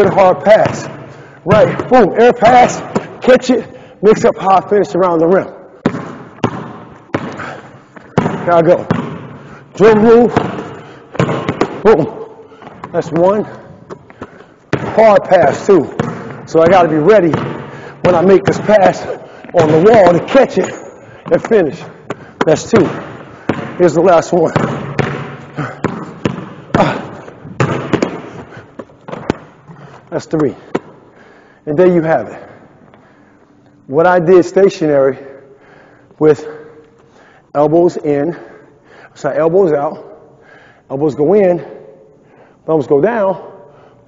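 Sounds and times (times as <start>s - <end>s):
basketball bouncing on hardwood: 0.0s - 2.1s, 5.8s - 9.4s, 10.2s - 13.2s, 13.8s - 20.4s, 22.1s - 23.9s, 24.5s - 29.5s
ball hitting wall: 5.8s - 9.4s, 10.2s - 13.2s, 13.8s - 21.5s, 22.1s - 23.9s, 24.5s - 29.8s.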